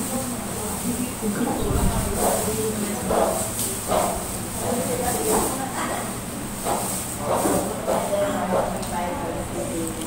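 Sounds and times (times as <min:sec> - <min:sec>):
faint voices of diners: 0:00.0 - 0:10.0
restaurant room hiss: 0:00.0 - 0:10.0.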